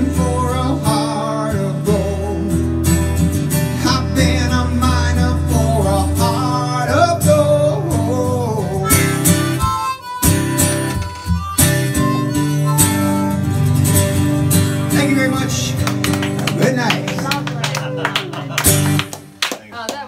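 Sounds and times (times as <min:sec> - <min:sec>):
strummed acoustic guitar: 0:00.0 - 0:19.4
harmonica melody: 0:06.3 - 0:15.7.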